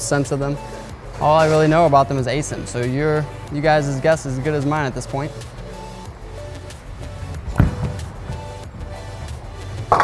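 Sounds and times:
background music: 0:00.0 - 0:10.0
bowling ball rolling: 0:07.2 - 0:08.8, 0:09.8 - 0:10.0
bowling ball thud: 0:07.4 - 0:08.6
bowling pins crashing: 0:07.5 - 0:08.5.

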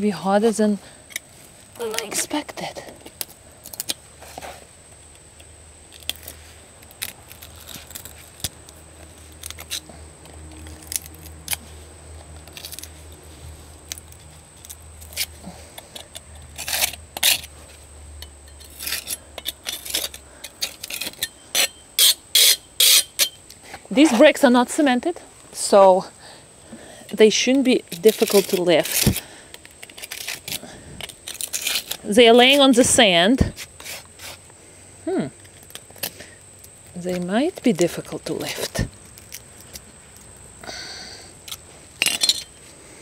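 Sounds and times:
hand tool scraping bricks: 0:13.8 - 0:24.8, 0:27.1 - 0:34.4, 0:41.4 - 0:42.8.

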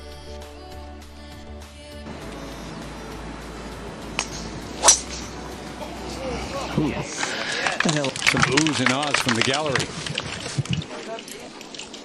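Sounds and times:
outdoor background hiss: 0:00.0 - 0:12.0
golf club striking ball: 0:03.9 - 0:06.3.

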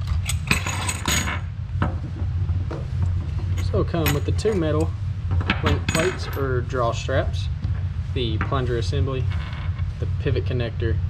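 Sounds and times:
metal parts clinking on wooden table: 0:00.0 - 0:01.4, 0:05.4 - 0:06.5.

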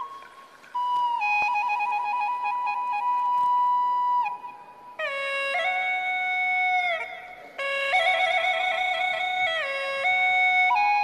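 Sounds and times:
flute melody: 0:00.0 - 0:11.0.

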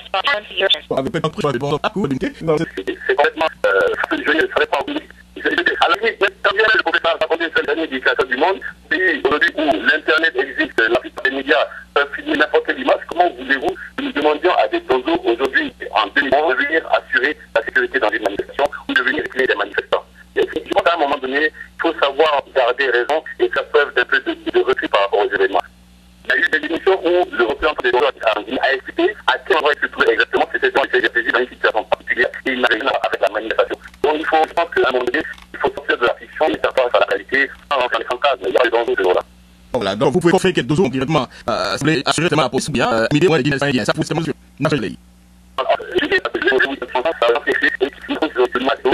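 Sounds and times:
man talking over telephone: 0:00.0 - 0:45.0, 0:45.6 - 0:48.9
low steady line hum: 0:00.0 - 0:48.9
crackling clicks on phone line: 0:35.0 - 0:35.8.

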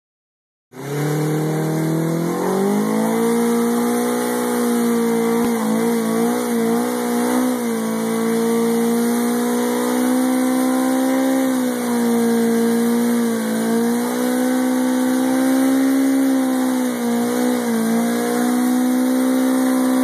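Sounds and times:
motorcycle engine revving: 0:00.7 - 0:20.0.

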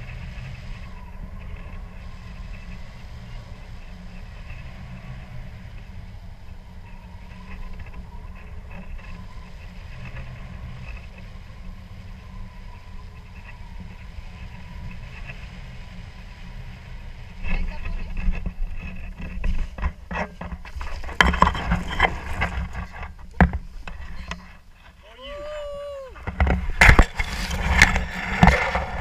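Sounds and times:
wind rumbling on microphone: 0:00.0 - 0:29.0
sliding on gravel: 0:16.5 - 0:29.0
knocks scrapes and thumps: 0:17.4 - 0:25.0, 0:26.2 - 0:29.0.

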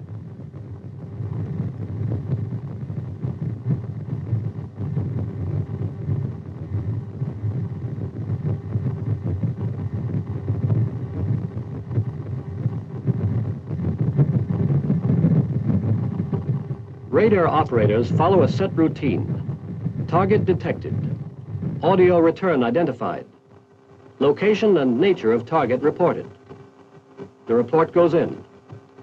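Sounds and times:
radar doppler rumble: 0:00.0 - 0:29.0.

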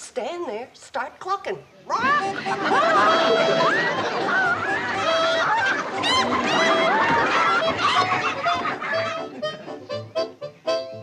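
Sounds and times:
chickens clucking and squawking: 0:01.9 - 0:09.9.

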